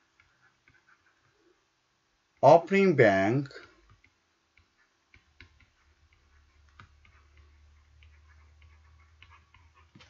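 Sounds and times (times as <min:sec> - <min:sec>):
faint low hum: 0:00.0 - 0:10.0
stylus tapping on pen tablet: 0:03.6 - 0:10.0.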